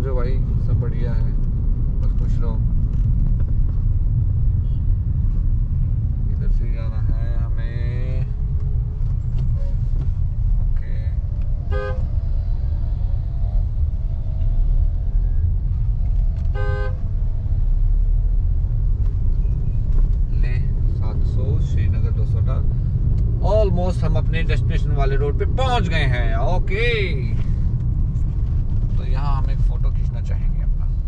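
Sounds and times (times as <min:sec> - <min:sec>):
car cabin road rumble: 0:00.0 - 0:31.0
vehicle horn toots: 0:11.7 - 0:12.1, 0:16.5 - 0:17.0.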